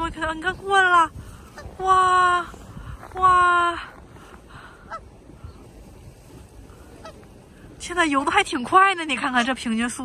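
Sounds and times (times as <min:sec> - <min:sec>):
faint outdoor background: 0:00.0 - 0:10.0
rising waterfowl calls: 0:01.4 - 0:02.3, 0:04.6 - 0:07.8.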